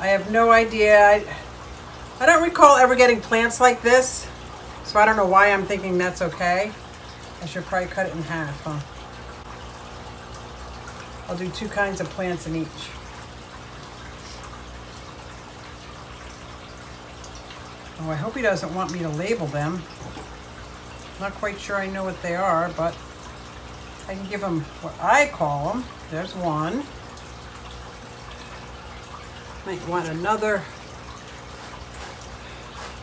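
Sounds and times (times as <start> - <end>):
water trickling: 0.0 - 33.0.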